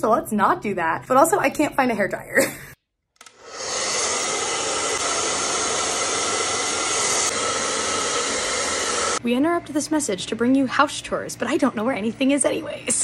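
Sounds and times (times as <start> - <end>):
hair dryer blowing: 3.2 - 9.2.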